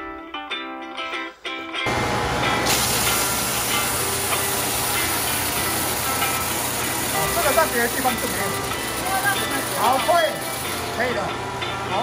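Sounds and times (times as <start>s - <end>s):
belt sander running: 1.9s - 11.9s.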